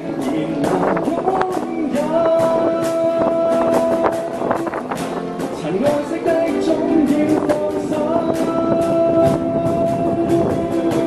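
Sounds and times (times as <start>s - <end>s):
man singing long note: 0.0s - 4.7s, 5.6s - 11.0s
strummed acoustic guitar: 0.0s - 11.0s.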